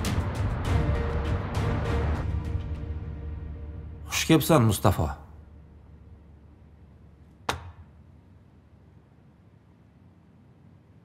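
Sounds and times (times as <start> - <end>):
folder slapped on wooden desk: 7.5 - 7.9.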